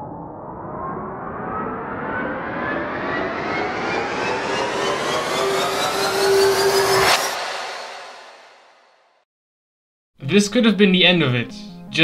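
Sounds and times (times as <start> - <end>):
rising riser sound effect: 0.0 - 9.2
impact hit: 4.7 - 9.0.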